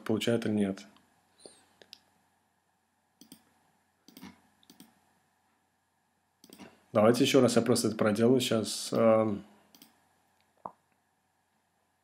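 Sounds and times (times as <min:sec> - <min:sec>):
computer clicks: 0:03.2 - 0:03.5, 0:04.1 - 0:05.0, 0:06.4 - 0:06.7, 0:09.7 - 0:10.0.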